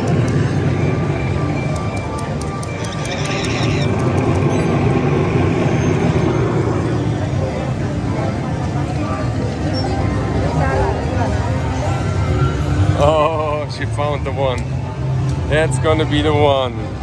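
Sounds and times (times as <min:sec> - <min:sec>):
murmur of voices: 0:00.0 - 0:17.0.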